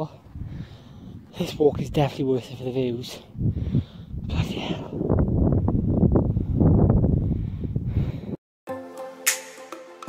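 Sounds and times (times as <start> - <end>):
wind buffeting microphone: 0.0 - 8.4
soft music: 8.7 - 10.0.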